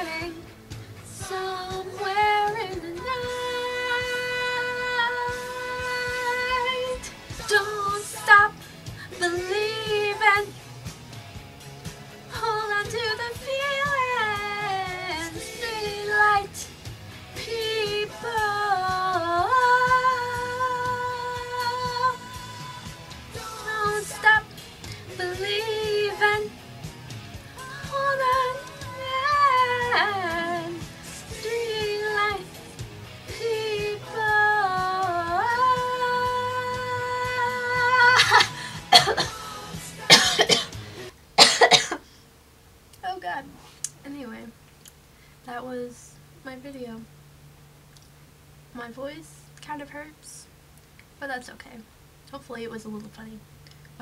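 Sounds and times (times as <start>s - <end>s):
young woman singing: 0.0s - 0.4s, 1.0s - 10.6s, 12.3s - 16.8s, 17.4s - 26.6s, 27.5s - 40.7s
woman coughing: 38.1s - 39.4s, 40.1s - 40.8s, 41.4s - 42.0s.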